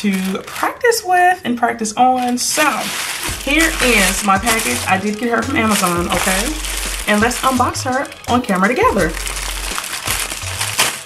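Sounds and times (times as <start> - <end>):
plastic mailer crinkling: 0.0 - 11.0.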